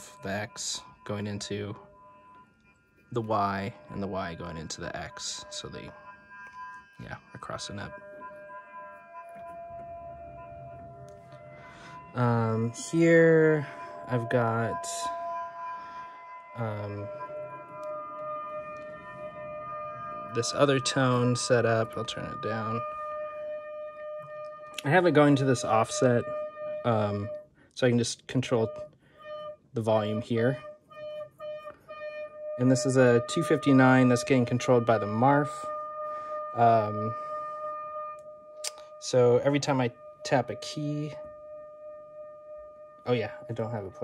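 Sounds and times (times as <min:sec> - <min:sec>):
modular synthesizer drone: 0:00.0 - 0:28.9, 0:29.8 - 0:44.0.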